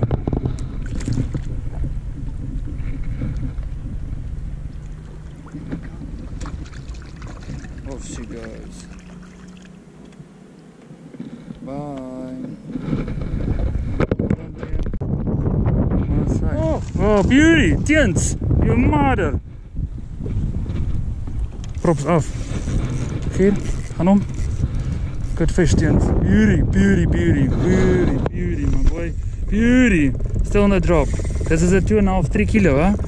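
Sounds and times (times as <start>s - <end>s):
water splashes: 0.0s - 10.6s
faint steady hum: 0.0s - 14.1s
choppy water: 0.0s - 33.0s
wind rumbling on microphone: 0.0s - 33.0s.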